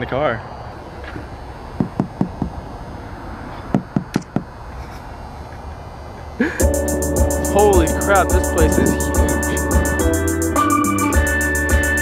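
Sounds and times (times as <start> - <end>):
knuckles knocking on car windshield: 1.8 - 2.5.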